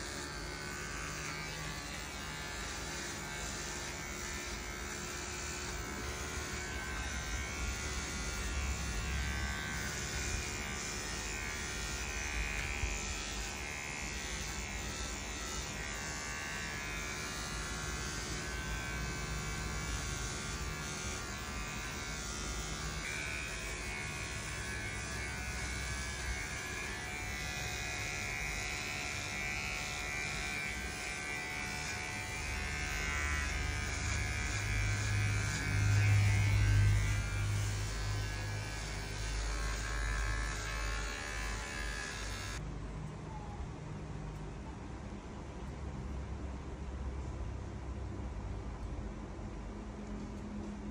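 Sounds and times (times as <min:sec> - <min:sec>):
electric clipper buzzing: 0:00.0 - 0:42.6.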